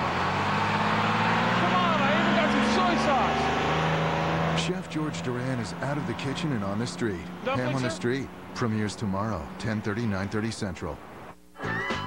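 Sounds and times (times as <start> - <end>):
bus engine running: 0.0 - 11.4
voices: 1.5 - 3.6, 4.5 - 11.0.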